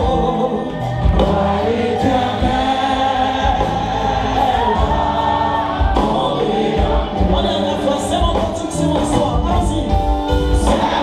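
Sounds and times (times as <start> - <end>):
band playing: 0.0 - 11.0
congregation singing: 0.0 - 11.0.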